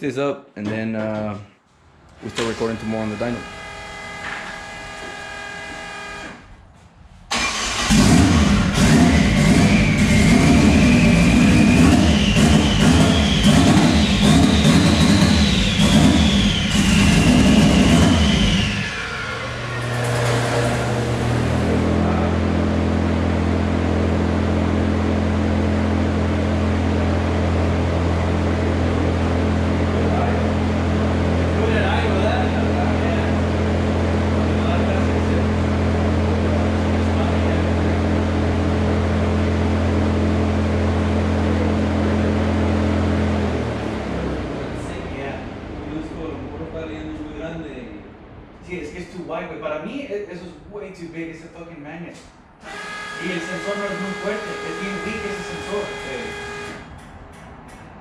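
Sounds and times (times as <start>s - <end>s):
car engine revving and idling: 7.3s - 48.0s, 52.6s - 58.0s.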